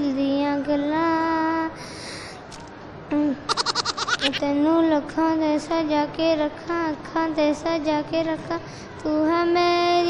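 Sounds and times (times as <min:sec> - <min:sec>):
boy singing unaccompanied: 0:00.0 - 0:01.8, 0:04.2 - 0:10.0.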